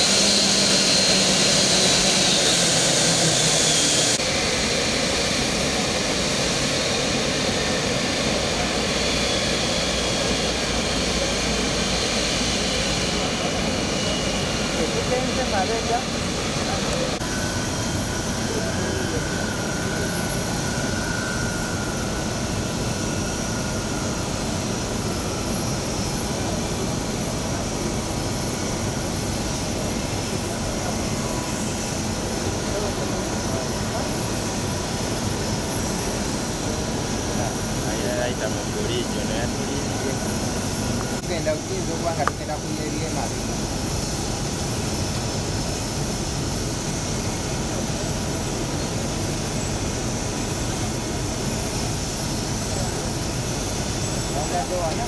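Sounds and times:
jet turbine with high whine: 0:00.0 - 0:55.0.

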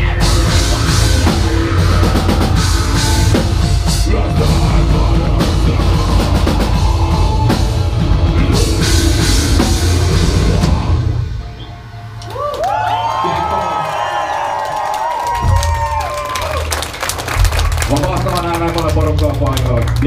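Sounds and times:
heavy metal band playing live: 0:00.0 - 0:12.2
electric guitar notes bending: 0:00.0 - 0:12.4.

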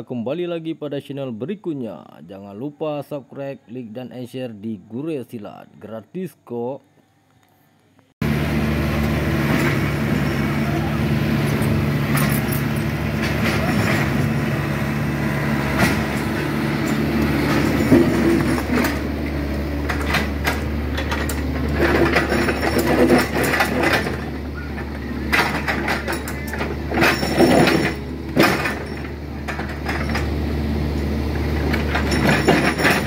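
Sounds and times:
diesel excavator engine running: 0:08.2 - 0:33.0
metallic clanks on asphalt and stones: 0:09.0 - 0:33.0.

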